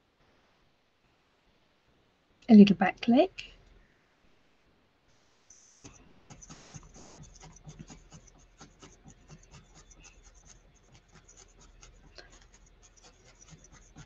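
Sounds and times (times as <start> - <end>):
felting needle jabbing wool: 5.5 - 14.0.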